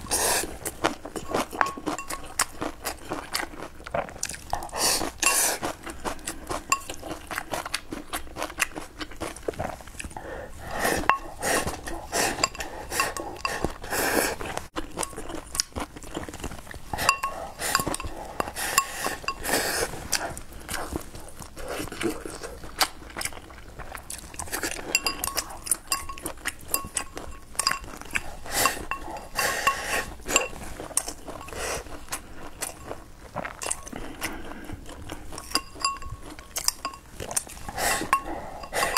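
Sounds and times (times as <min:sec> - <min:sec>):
chewing and mouth sounds: 0:00.0 - 0:38.9
eating noises: 0:00.0 - 0:38.9
chopsticks clinking on ceramic bowl: 0:01.1 - 0:02.6, 0:05.0 - 0:05.7, 0:06.6 - 0:07.4, 0:11.0 - 0:13.8, 0:17.0 - 0:19.7, 0:24.6 - 0:31.9, 0:35.3 - 0:38.9
chopsticks clicking on a ceramic bowl: 0:25.0 - 0:27.9.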